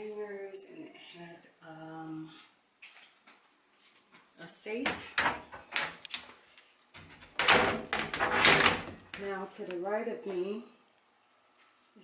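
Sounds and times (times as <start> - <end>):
sliding closet door rolling: 7.3 - 9.0.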